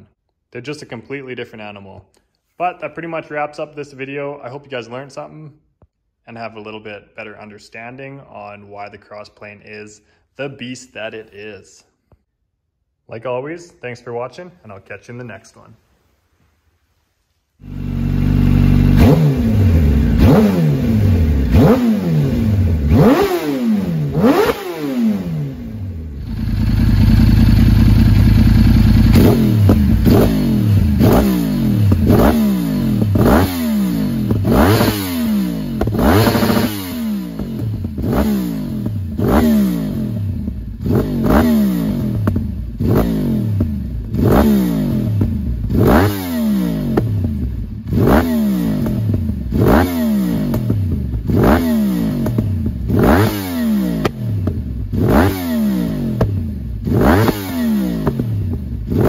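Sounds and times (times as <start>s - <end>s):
motorcycle engine revving: 17.6s - 59.0s.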